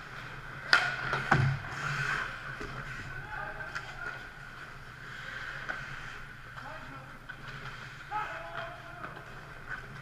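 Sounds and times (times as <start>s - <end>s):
distant shout: 8.1s - 9.0s.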